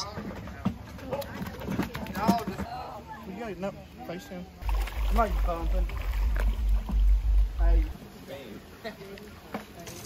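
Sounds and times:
people talking indistinctly: 0:00.0 - 0:10.0.

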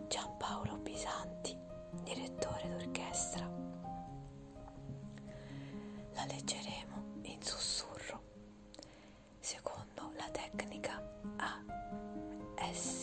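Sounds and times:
slow background music: 0:00.0 - 0:13.0
person whispering: 0:00.1 - 0:03.6, 0:06.2 - 0:08.2, 0:09.4 - 0:11.7, 0:12.6 - 0:13.0.

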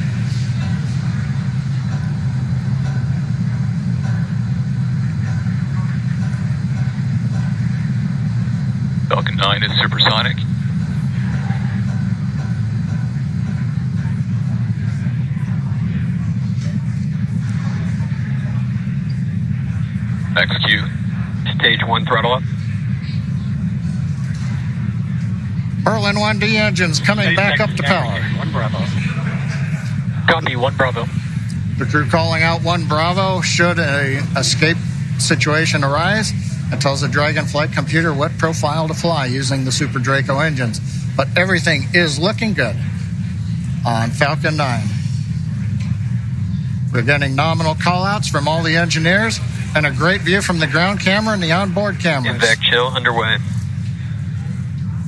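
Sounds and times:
rocket engines rumbling: 0:00.0 - 0:55.0.

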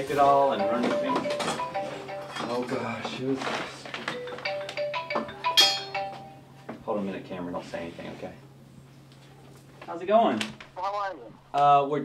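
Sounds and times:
marimba phone ringtone: 0:00.1 - 0:02.9, 0:04.1 - 0:06.5
clinking strike: 0:05.2 - 0:06.3.

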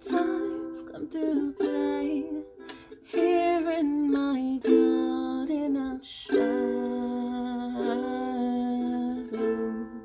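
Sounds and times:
ukulele chord: 0:00.0 - 0:10.0.

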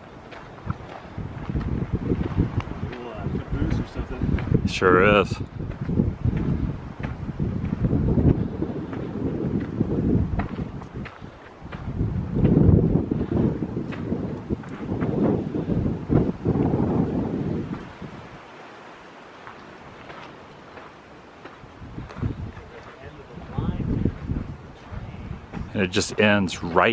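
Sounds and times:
wind buffeting microphone: 0:00.0 - 0:26.9.

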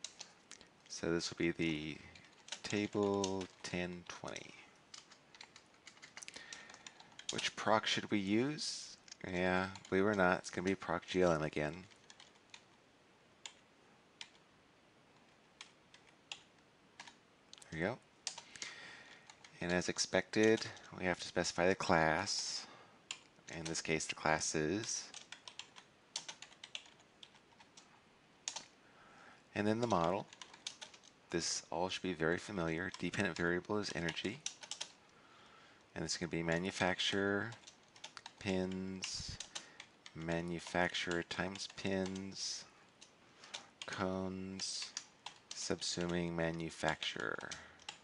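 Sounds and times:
keyboard typing: 0:00.0 - 0:00.4, 0:02.1 - 0:07.6, 0:11.8 - 0:12.7, 0:15.2 - 0:17.2, 0:18.2 - 0:20.9, 0:24.8 - 0:28.7, 0:29.6 - 0:31.2, 0:32.9 - 0:35.0, 0:37.5 - 0:48.0.

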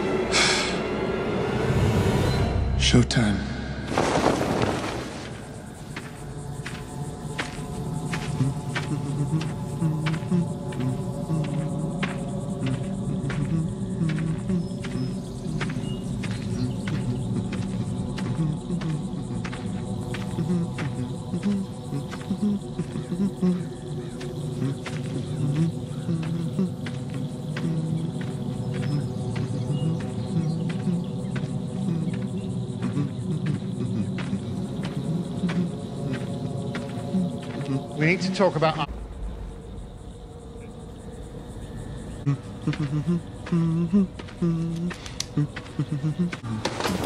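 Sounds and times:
insects chirping: 0:00.0 - 0:47.0.

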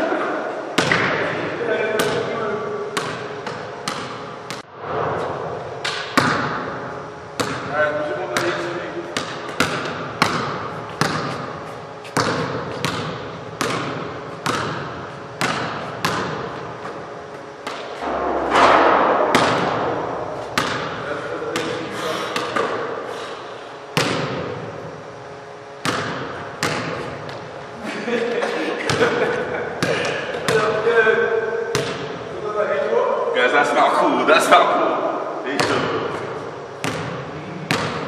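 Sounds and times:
basketball bouncing on wooden floor: 0:00.8 - 0:01.2, 0:03.0 - 0:04.6, 0:07.4 - 0:07.7, 0:09.2 - 0:17.0, 0:17.6 - 0:21.0, 0:24.0 - 0:24.6, 0:25.8 - 0:27.5, 0:31.7 - 0:32.2, 0:36.8 - 0:38.0
sneakers squeaking on floor: 0:08.4 - 0:18.1.

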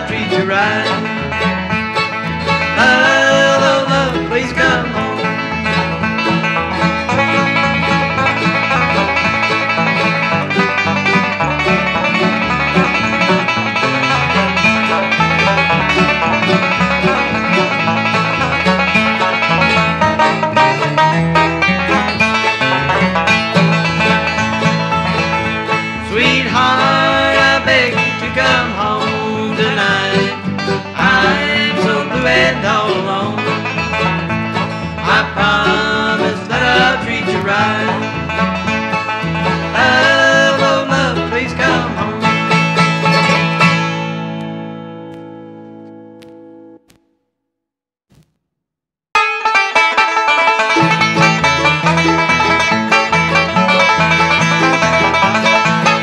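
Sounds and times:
banjo: 0:00.0 - 0:46.0, 0:49.2 - 0:56.0
acoustic guitar: 0:00.0 - 0:46.9, 0:49.2 - 0:56.0
stepping bass line: 0:00.0 - 0:47.2.

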